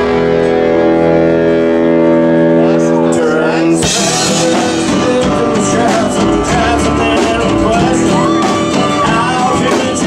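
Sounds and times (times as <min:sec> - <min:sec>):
band chord ringing: 0:00.0 - 0:10.0.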